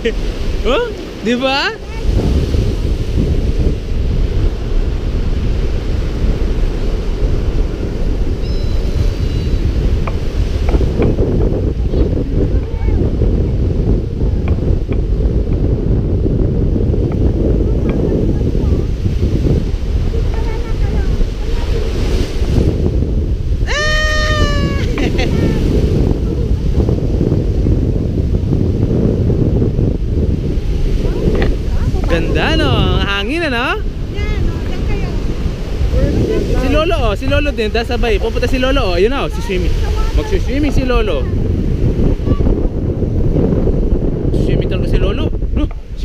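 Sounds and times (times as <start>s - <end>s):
small waves washing on sand: 0.0s - 44.2s
surf: 0.0s - 46.0s
wind buffeting microphone: 0.0s - 46.0s
toddler crying: 23.7s - 25.7s.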